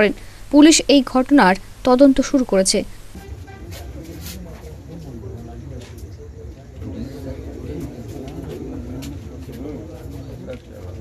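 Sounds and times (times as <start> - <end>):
muffled men's voices in conversation: 3.1 - 11.0.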